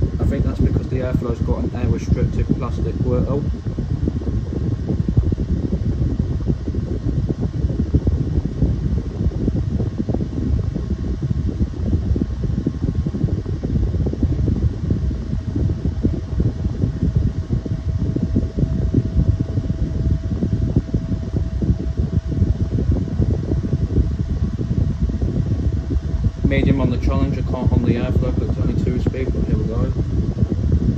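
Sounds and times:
desk fans blowing air: 0.0 - 30.9
faint steady hum: 0.0 - 30.9.

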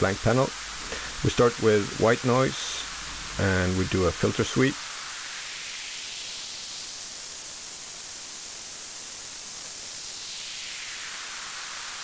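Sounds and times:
filtered white noise hiss: 0.0 - 12.0.

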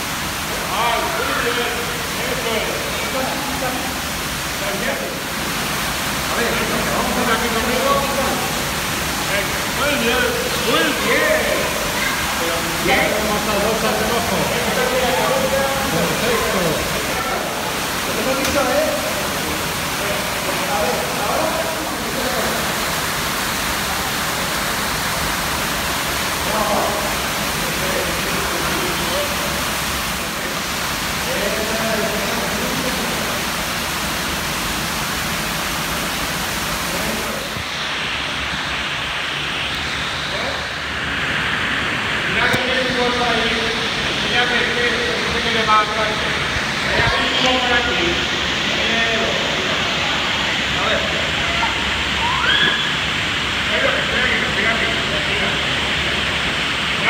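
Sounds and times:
running water rushing: 0.0 - 57.0.

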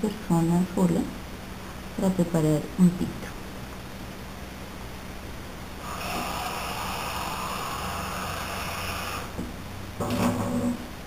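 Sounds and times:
whirring with high whine: 5.6 - 10.8.

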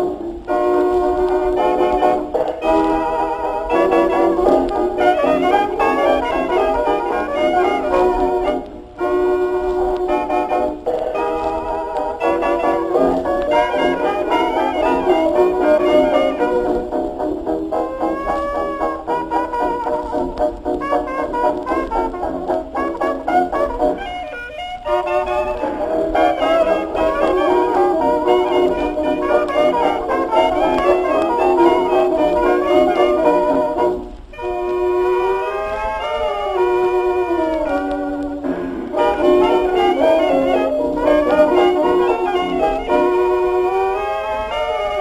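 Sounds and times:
horn sliding long notes: 0.0 - 17.0, 17.7 - 45.0
hot jazz band on old record: 0.0 - 45.0.

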